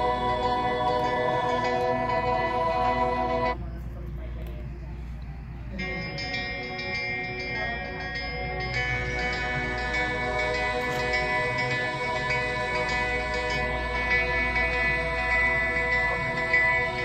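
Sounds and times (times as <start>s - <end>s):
soft music from phone speaker: 0.0s - 17.0s.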